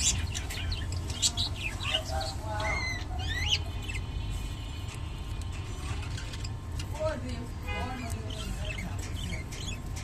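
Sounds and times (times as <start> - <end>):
budgerigars chirping: 0.0 - 4.2, 7.8 - 10.0.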